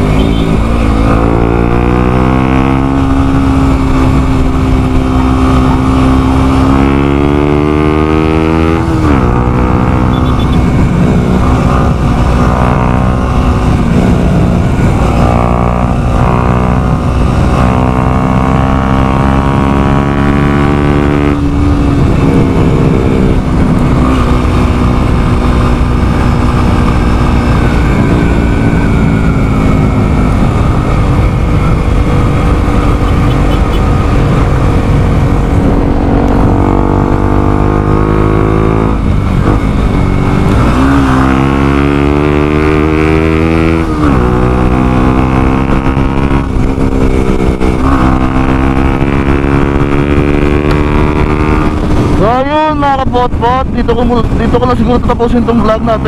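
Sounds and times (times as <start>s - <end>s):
motorcycle engine revving: 0.0s - 56.0s
wind on microphone: 7.6s - 52.3s.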